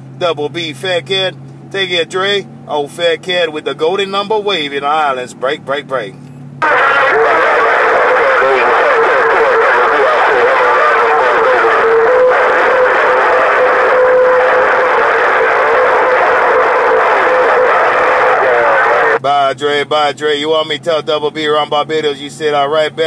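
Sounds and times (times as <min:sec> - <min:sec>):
distant radio voice: 0:01.8 - 0:23.0
radio static: 0:06.6 - 0:19.2.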